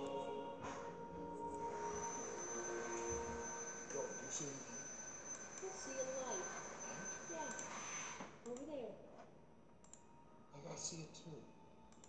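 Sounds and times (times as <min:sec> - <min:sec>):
thin high tone: 0:00.0 - 0:08.1.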